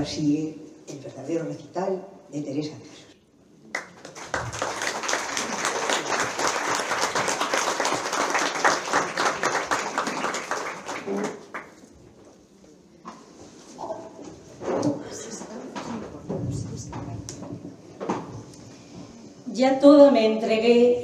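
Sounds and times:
audience applauding: 0:03.7 - 0:11.9.

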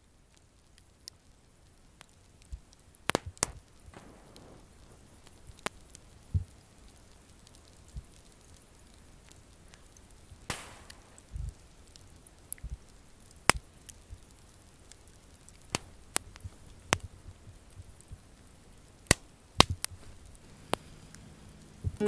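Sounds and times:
wood fire crackling: 0:00.0 - 0:22.0.

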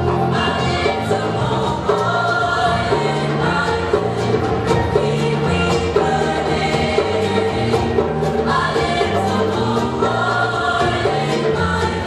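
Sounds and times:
gospel choir singing: 0:00.0 - 0:12.0
instrumental backing: 0:00.0 - 0:12.0.

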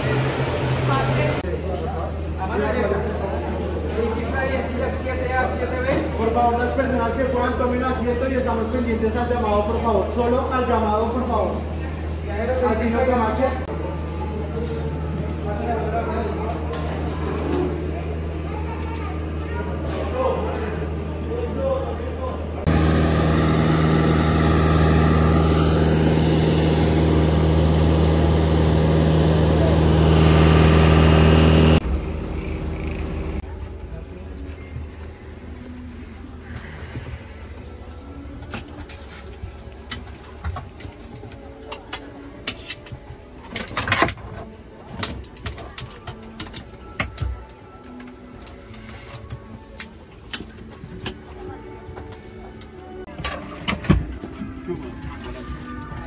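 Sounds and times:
turboprop engine drone: 0:00.0 - 0:01.4, 0:22.5 - 0:38.7
aircraft cabin hum: 0:22.7 - 0:33.6.

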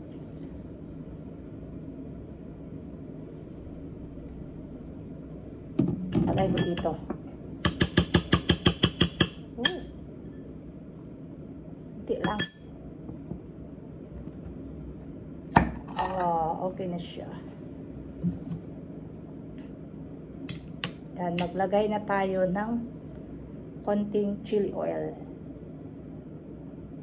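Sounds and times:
metal spoon clinking on bowl: 0:06.3 - 0:07.0, 0:07.6 - 0:09.9, 0:12.2 - 0:12.7
metal spoon clinking on tableware: 0:06.3 - 0:07.0, 0:12.2 - 0:12.7.

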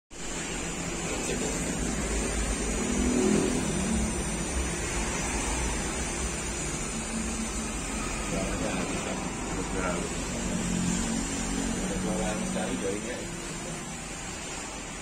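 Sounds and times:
electric gearmotor humming: 0:00.2 - 0:15.0.

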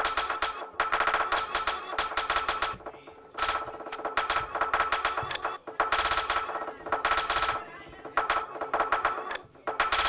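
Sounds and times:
stuttering synthesizer clicks: 0:00.0 - 0:07.6.

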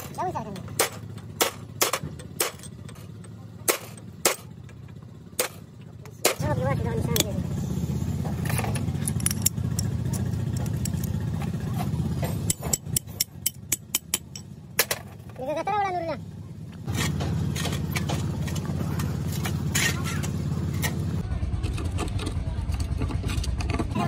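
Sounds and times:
low mechanical drone: 0:00.0 - 0:24.0.

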